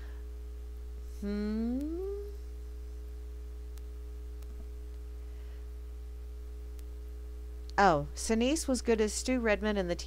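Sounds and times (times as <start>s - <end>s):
low electrical hum: 0.0s - 10.0s
woman humming: 1.2s - 2.5s.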